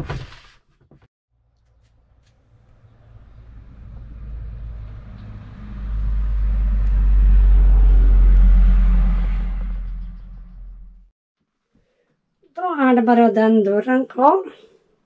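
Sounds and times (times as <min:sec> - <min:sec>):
passing vehicle engine rumble: 0:01.8 - 0:11.1.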